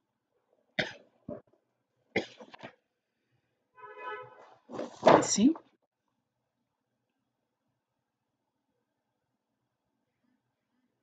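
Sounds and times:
person coughing: 0:02.2 - 0:02.5.

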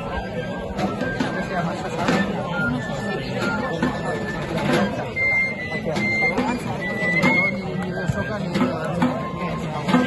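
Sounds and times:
crowd chatter: 0:00.0 - 0:10.0
drum strokes: 0:00.0 - 0:10.0
flute playing high notes: 0:00.0 - 0:10.0.

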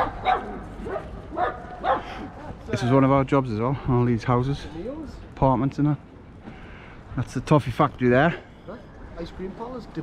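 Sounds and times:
dog barking and yipping: 0:00.0 - 0:02.2.

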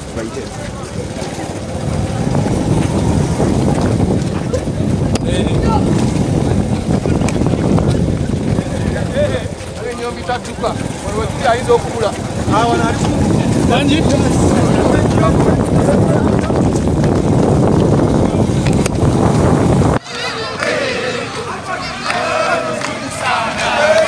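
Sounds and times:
wind buffeting microphone: 0:00.0 - 0:20.0
runners shouting and talking: 0:00.0 - 0:24.0.

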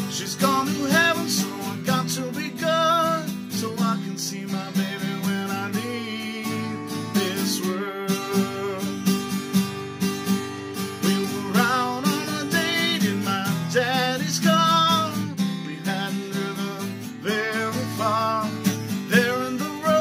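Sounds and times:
person singing: 0:00.0 - 0:09.0, 0:11.0 - 0:20.0
acoustic guitar strumming: 0:00.0 - 0:20.0.

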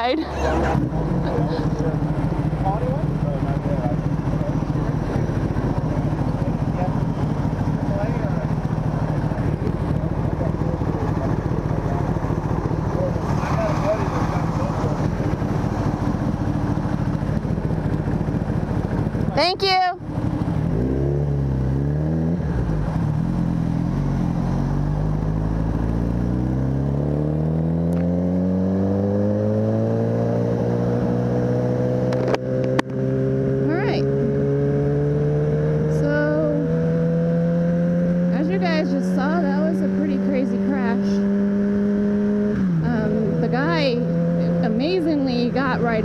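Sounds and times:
motorcycle engine accelerating: 0:00.0 - 0:46.0
wind and road noise: 0:00.0 - 0:46.0.

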